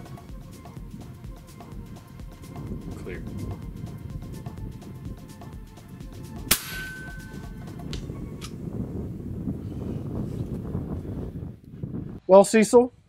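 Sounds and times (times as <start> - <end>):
low wind rumble: 0.0 - 13.0
air rifle shot: 6.5 - 7.2.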